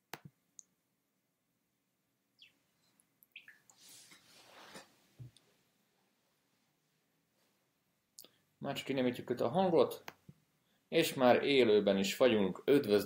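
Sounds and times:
soft rustling: 3.7s - 7.7s.

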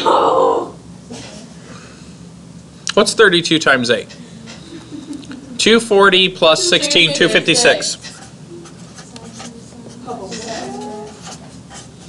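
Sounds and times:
marker scratching on paper: 7.4s - 12.0s.

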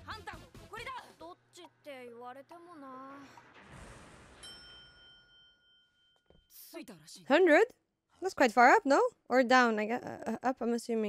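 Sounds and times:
elevator chime ding: 4.4s - 6.3s.

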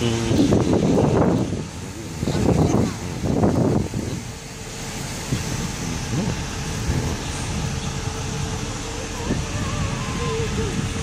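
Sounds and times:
diesel engine rumbling: 0.0s - 11.0s.

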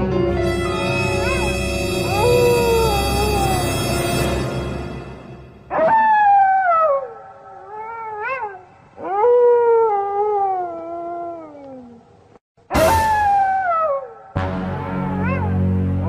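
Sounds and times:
long howling wails: 0.5s - 4.2s.

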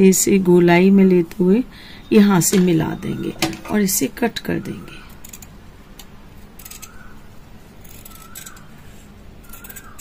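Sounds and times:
scissors snipping fabric: 7.8s - 8.7s, 9.4s - 10.0s.

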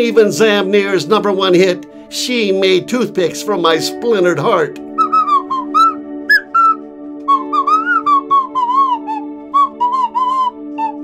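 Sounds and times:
held backing chord: 0.0s - 11.0s
slide whistle melody: 4.9s - 11.0s.

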